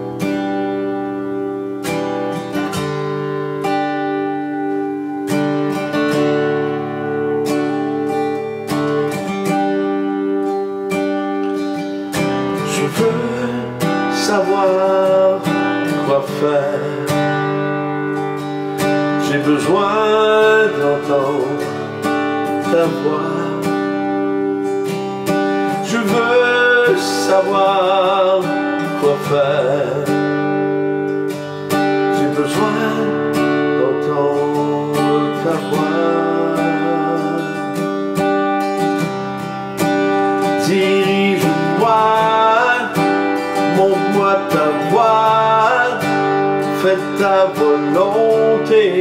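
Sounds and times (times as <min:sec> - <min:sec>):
acoustic guitar strummed chords: 0:00.0 - 0:49.0.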